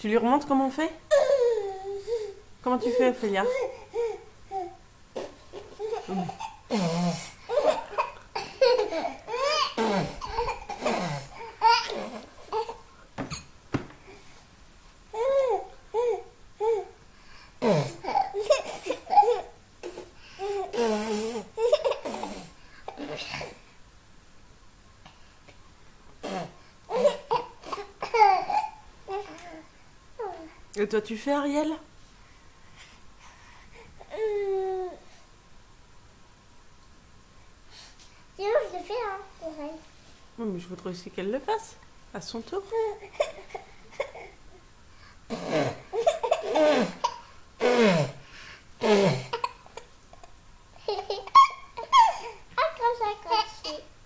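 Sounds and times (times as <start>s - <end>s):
baby laughing: 5.5s - 12.8s, 17.8s - 21.0s, 21.6s - 23.4s, 26.9s - 29.4s, 45.4s - 47.3s, 50.8s - 53.9s.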